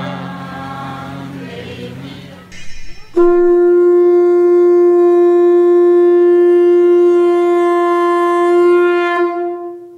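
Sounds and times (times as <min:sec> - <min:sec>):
conch shell blown: 0:02.5 - 0:09.9.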